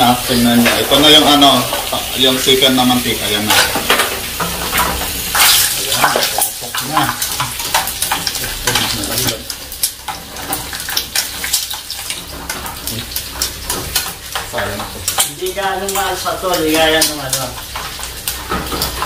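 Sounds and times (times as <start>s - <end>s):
pork skin sizzling in hot oil: 0.0s - 19.0s.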